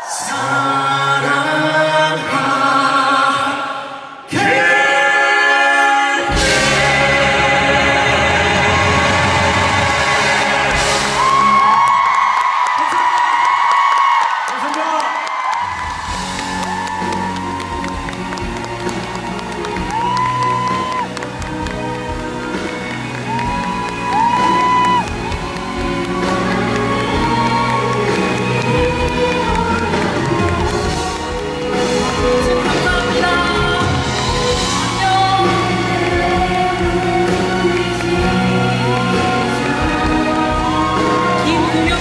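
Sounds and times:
male voices singing in harmony: 0.0 - 11.4, 25.7 - 42.0
live band music with steady beat: 6.3 - 11.6, 16.0 - 42.0
crowd cheering: 6.3 - 42.0.

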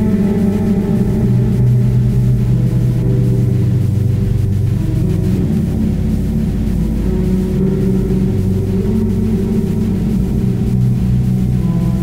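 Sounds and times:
electric bass drone with reverb: 0.0 - 12.0.

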